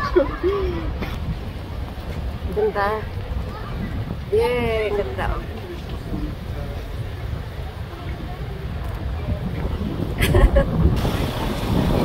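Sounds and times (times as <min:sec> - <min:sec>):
wind buffeting microphone: 0:00.0 - 0:12.0
woman's voice: 0:04.3 - 0:06.4.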